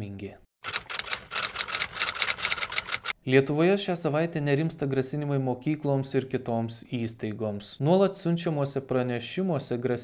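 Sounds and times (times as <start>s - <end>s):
typewriter key clatter: 0.6s - 3.1s.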